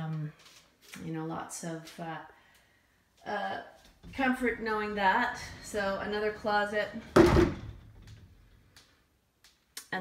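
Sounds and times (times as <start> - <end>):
closet door knock and rattle: 7.0 - 8.3.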